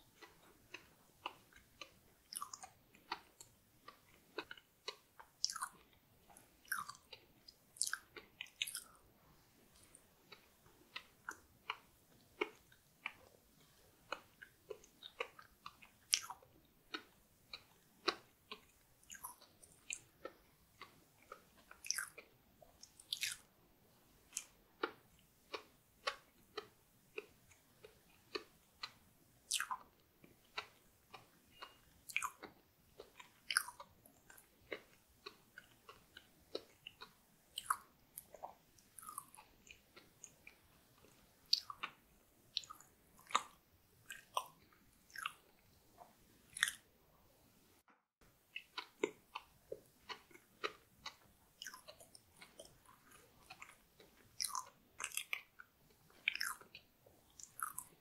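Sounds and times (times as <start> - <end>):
wet chewing mouth clicks: 0.1 - 9.1, 9.7 - 23.5, 24.2 - 46.8, 48.4 - 58.0.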